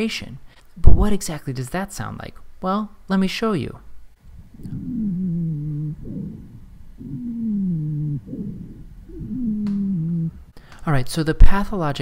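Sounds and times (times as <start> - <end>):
quiet breaths: 4.2 - 10.9
wheezing breath tones: 4.3 - 10.7.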